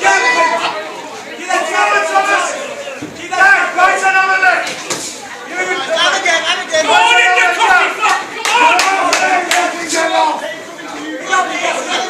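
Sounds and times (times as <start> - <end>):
spectators shouting: 0.0 - 4.8, 5.4 - 12.0.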